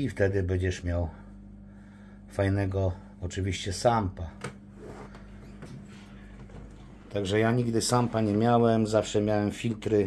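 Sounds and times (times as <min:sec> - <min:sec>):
aquarium equipment hum: 0:00.0 - 0:10.0.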